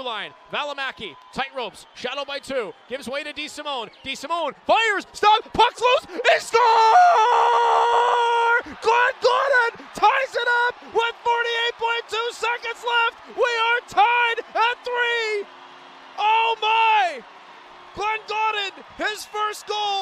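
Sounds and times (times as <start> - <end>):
announcer shouting excitedly: 4.4 - 15.5, 16.2 - 17.2, 18.0 - 20.0.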